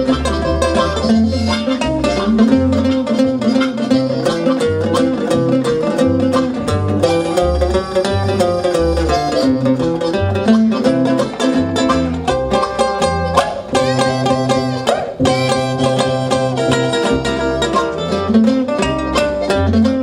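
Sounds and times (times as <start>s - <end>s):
harmonica: 0.0s - 20.0s
picked ukulele: 0.0s - 20.0s
upright bass walking: 0.0s - 20.0s.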